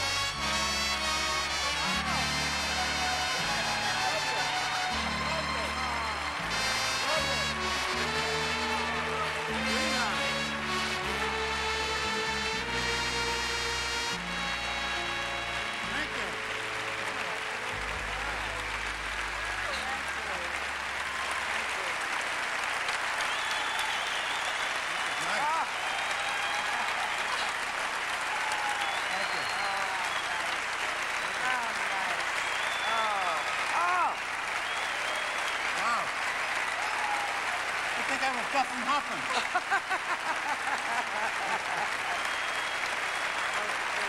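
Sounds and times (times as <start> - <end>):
audience applauding: 0.0 - 44.0
shouts and whoops: 23.5 - 30.5, 32.7 - 36.0, 36.7 - 37.7.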